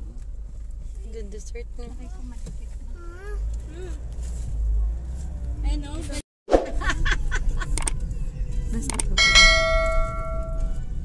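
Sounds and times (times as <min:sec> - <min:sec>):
vehicle road noise rumble: 0:00.0 - 0:11.0
sharp clicks: 0:07.7 - 0:08.0, 0:08.8 - 0:09.2
bright bell ding: 0:09.2 - 0:10.8.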